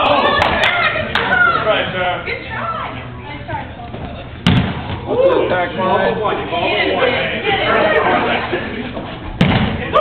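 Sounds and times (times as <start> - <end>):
players' voices: 0.0 - 10.0
dodgeball thud: 4.4 - 5.1, 9.3 - 10.0.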